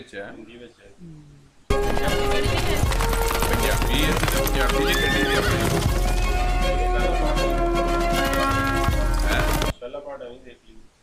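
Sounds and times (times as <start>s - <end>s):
galloping hoofbeats: 1.7s - 6.8s, 7.8s - 9.7s
film music: 1.7s - 9.7s
horse whinnying: 3.4s - 6.6s.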